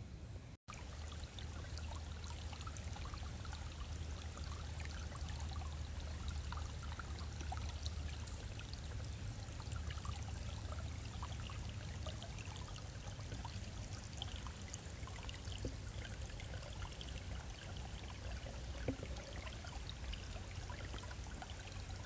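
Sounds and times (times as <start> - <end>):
low steady rumble: 0.0 - 22.0
creek water babbling over stones: 0.7 - 22.0.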